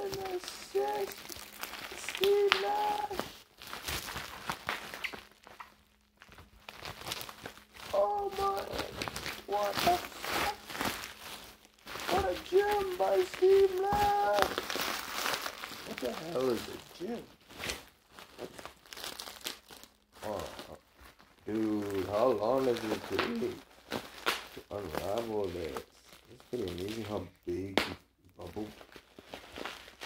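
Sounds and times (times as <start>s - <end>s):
bubble wrap crinkling: 0.0s - 30.0s.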